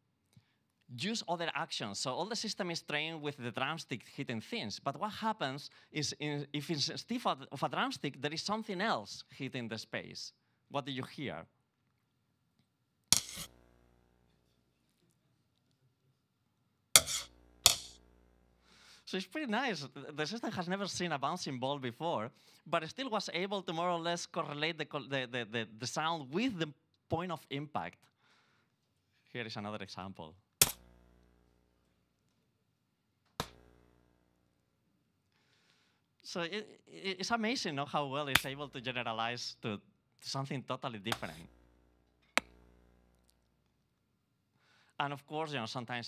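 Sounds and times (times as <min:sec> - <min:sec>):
synthesized drumstick hit ringing: 0:17.0 - 0:18.0.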